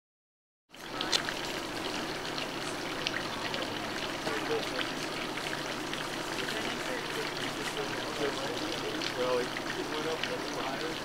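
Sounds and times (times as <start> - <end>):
rushing outdoor background noise: 0.8 - 11.0.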